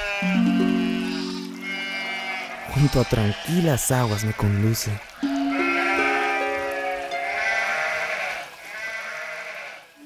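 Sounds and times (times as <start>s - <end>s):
sheep bleating: 0.0s - 10.0s
soft background music: 0.2s - 2.8s, 5.2s - 8.2s.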